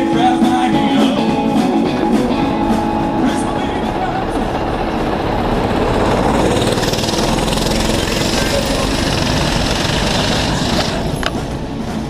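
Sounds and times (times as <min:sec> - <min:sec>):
go-kart engines accelerating: 0:00.0 - 0:12.0.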